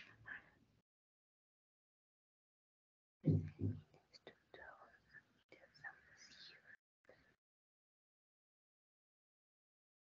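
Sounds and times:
faint whispered speech: 0.0 - 0.7, 3.3 - 7.4.

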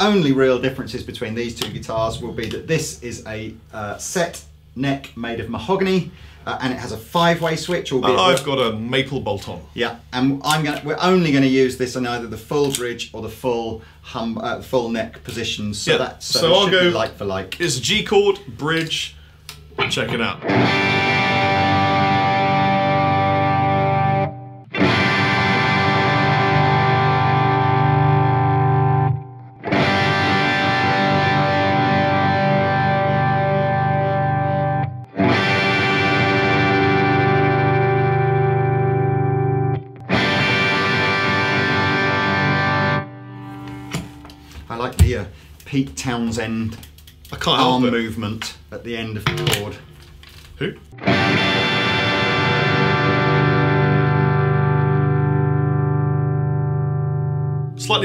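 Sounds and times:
overdriven electric guitar chord: 20.4 - 44.5, 51.0 - 57.8.

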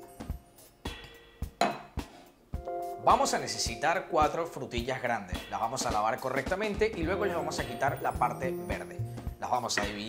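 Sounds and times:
background music: 0.0 - 10.0
glassware clinking: 1.6 - 1.9.

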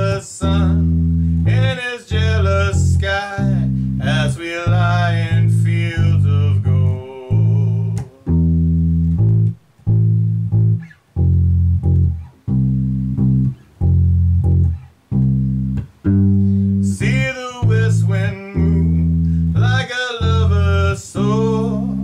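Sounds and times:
electric bass guitar low notes: 0.0 - 22.0.

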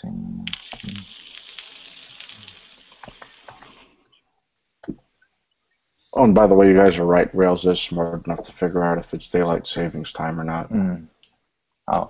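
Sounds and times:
rushing hiss: 0.4 - 4.0.

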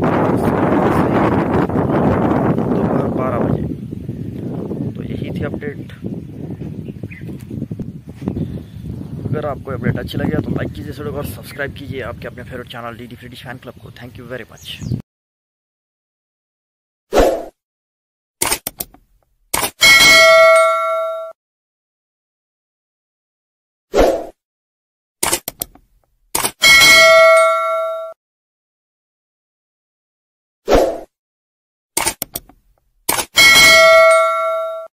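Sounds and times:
quick clicks: 18.4 - 19.8, 25.2 - 26.6, 32.0 - 33.4
loud bell ding: 19.8 - 21.4, 26.6 - 28.2, 33.4 - 34.9
short click: 25.2 - 25.8, 32.0 - 33.3.

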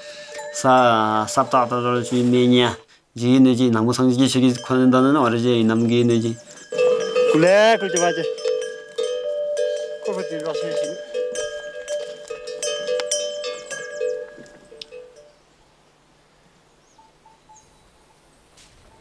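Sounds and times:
ringing held tones: 0.0 - 2.8, 4.3 - 15.4.

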